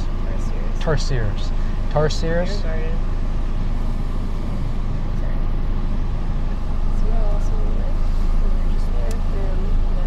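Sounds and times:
van engine rumble inside cabin: 0:00.0 - 0:10.0.

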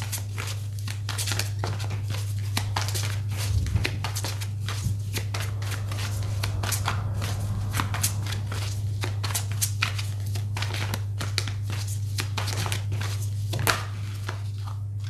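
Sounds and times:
steady low hum: 0:00.2 - 0:15.0.

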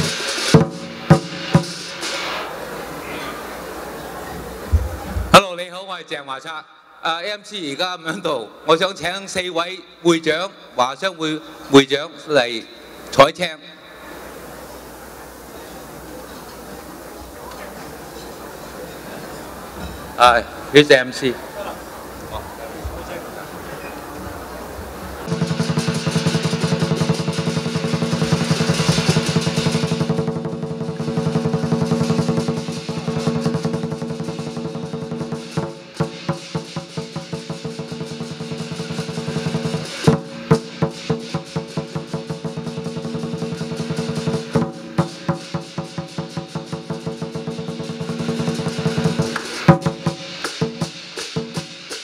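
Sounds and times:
cymbals and gong ringing: 0:00.0 - 0:05.4, 0:09.8 - 0:52.0
drum beating: 0:00.0 - 0:05.6, 0:14.0 - 0:52.0.

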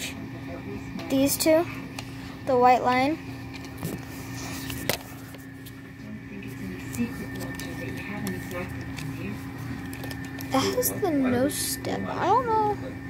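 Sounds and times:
steady electrical hum: 0:00.0 - 0:13.0.

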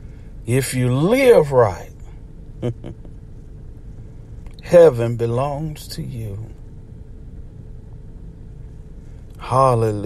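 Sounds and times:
faint steady hum: 0:00.0 - 0:10.0
low background rumble: 0:00.0 - 0:10.0.

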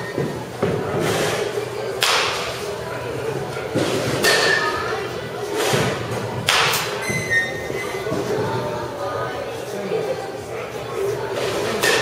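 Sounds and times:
baseballs hit and striking netting: 0:00.0 - 0:02.7, 0:03.6 - 0:04.9, 0:05.5 - 0:07.3, 0:11.4 - 0:12.0
murmur of voices: 0:00.0 - 0:12.0.

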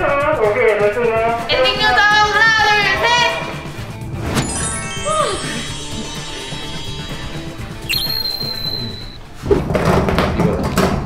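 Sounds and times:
background music: 0:00.0 - 0:11.0
sparkle sound effect: 0:04.4 - 0:09.2.

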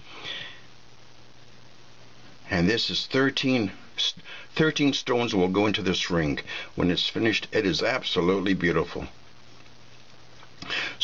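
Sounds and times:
faint hiss: 0:00.0 - 0:11.0
person speaking: 0:02.4 - 0:09.2.

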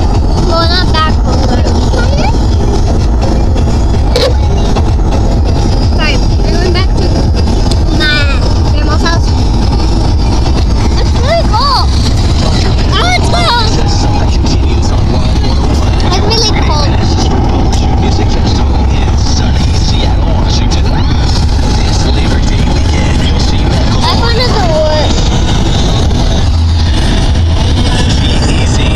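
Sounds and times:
car cabin rumble: 0:00.0 - 0:28.9.

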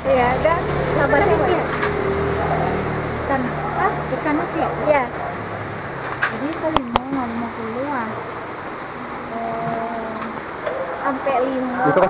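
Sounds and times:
background hubbub: 0:00.0 - 0:12.0.

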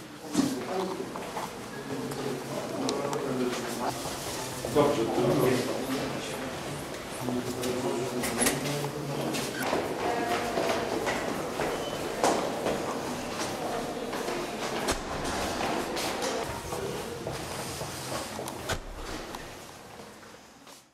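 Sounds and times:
faint voices: 0:00.0 - 0:20.7
footsteps on hard floor: 0:09.7 - 0:20.9.

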